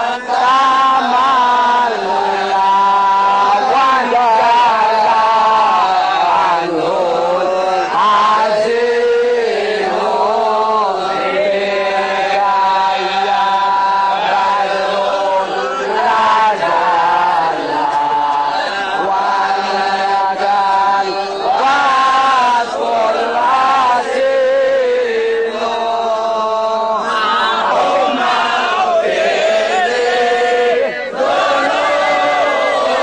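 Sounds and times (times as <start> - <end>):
person chanting melodically: 0.0 - 33.0.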